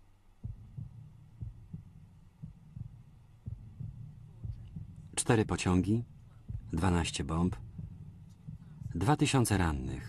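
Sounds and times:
faint low hum: 0.0s - 10.0s
heartbeat double thumps: 0.4s - 10.0s.

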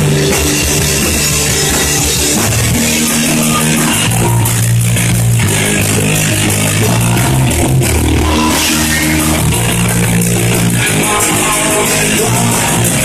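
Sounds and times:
bass guitar: 0.0s - 13.0s
drum kit: 0.0s - 13.0s
electric guitar riffing: 0.0s - 13.0s.

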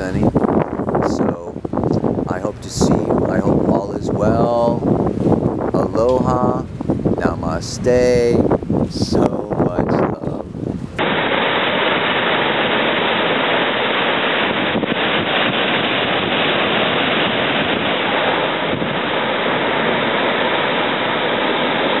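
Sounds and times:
ocean surf rushing: 0.0s - 22.0s
wind on microphone: 0.0s - 22.0s.

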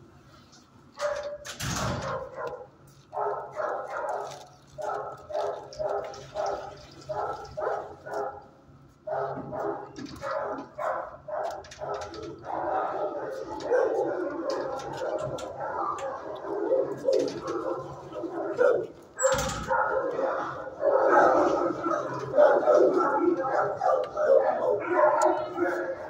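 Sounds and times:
dogs barking: 1.0s - 1.4s, 2.0s - 26.0s.

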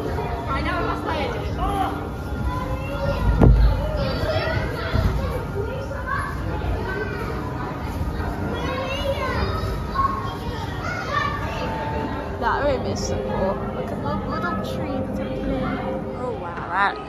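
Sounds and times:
children calling and shrieking: 0.0s - 17.0s
low thump: 3.4s - 3.8s.

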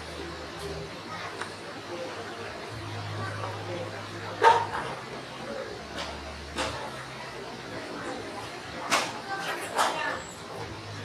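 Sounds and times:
steady low hum: 0.0s - 8.8s
dog barking: 4.4s - 4.8s.

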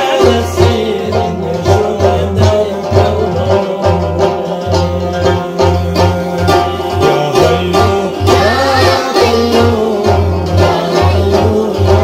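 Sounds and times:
plucked lute melody: 0.0s - 12.0s.

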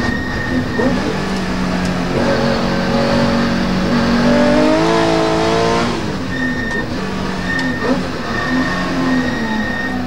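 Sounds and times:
car engine from inside cabin: 0.0s - 10.0s.

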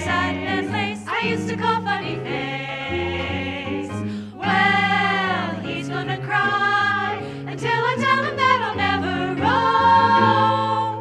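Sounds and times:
women singing in harmony: 0.0s - 11.0s.

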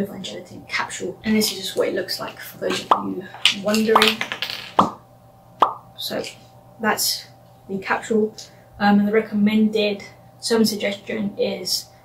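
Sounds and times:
capsules knocking in plastic bottle: 2.7s - 5.0s.

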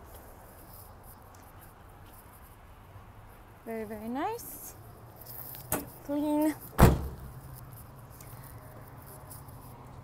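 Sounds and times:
tailgate slamming shut: 6.8s - 7.3s.

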